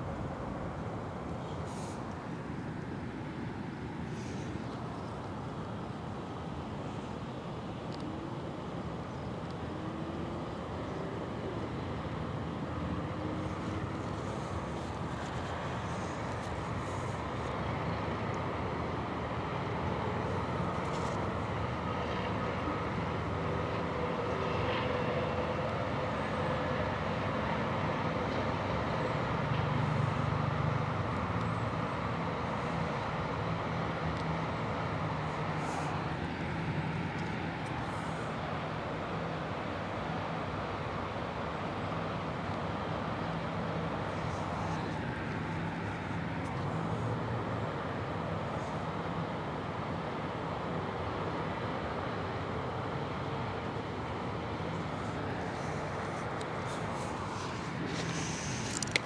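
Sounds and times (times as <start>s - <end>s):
distant traffic rumble: 0.0s - 59.0s.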